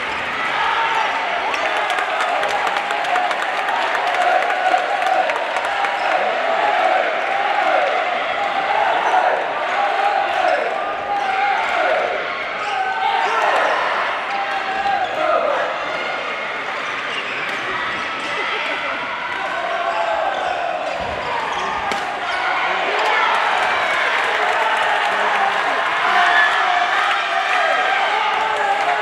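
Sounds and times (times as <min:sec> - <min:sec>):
shouted voices echoing: 0:00.0 - 0:29.0.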